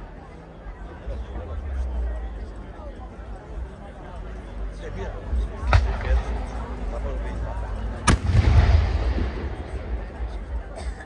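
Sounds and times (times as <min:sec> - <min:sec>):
low rumbling echo: 0:05.4 - 0:11.0
firework rocket bang: 0:08.1 - 0:10.6.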